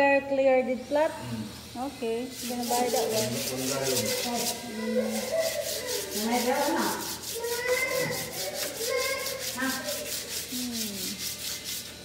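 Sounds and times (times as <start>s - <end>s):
sandpaper rubbing on wood: 2.3s - 12.0s.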